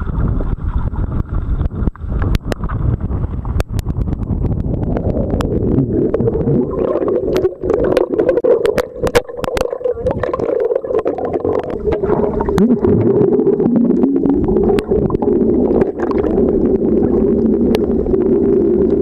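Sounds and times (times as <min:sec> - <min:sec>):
muffled underwater hum: 0:00.0 - 0:19.0
underwater clicks and crackles: 0:00.0 - 0:19.0.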